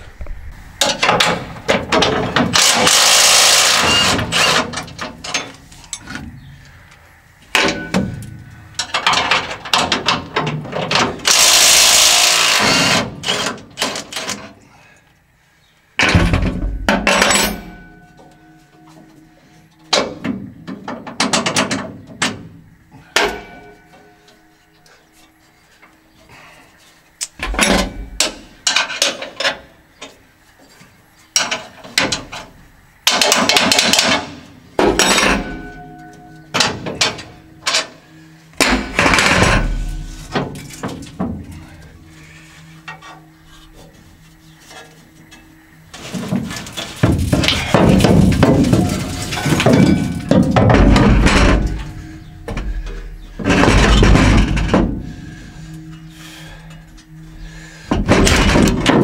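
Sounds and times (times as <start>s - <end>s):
metal scraping against metal: 0.0s - 6.8s, 16.0s - 59.0s
metal knocks and clanks: 0.2s - 6.6s, 7.5s - 11.6s, 16.0s - 24.5s, 27.3s - 59.0s.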